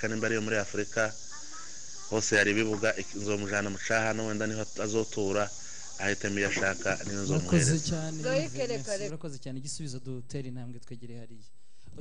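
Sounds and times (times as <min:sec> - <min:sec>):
person speaking: 0:00.0 - 0:09.2
high-pitched background hiss: 0:00.0 - 0:12.0.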